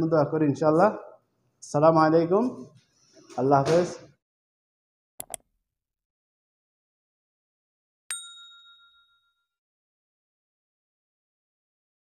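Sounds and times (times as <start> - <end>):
bell-like ding: 8.1 - 9.6.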